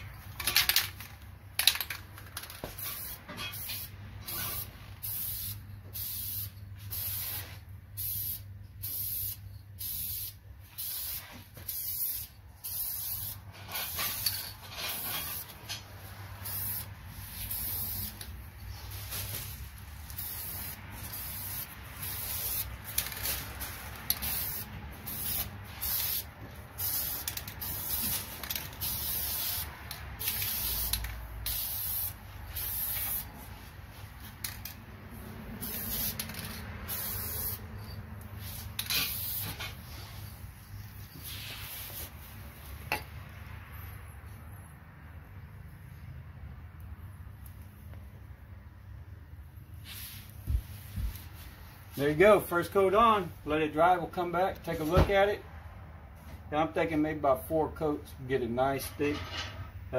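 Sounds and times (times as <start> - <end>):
spray can hissing: 2.9 - 14.4, 16.4 - 33.4, 35.6 - 39.7, 41.1 - 42.2.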